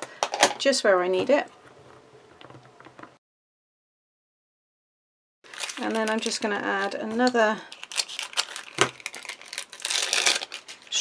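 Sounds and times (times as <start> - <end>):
tape peeling with paper rustle: 7.8 - 11.0.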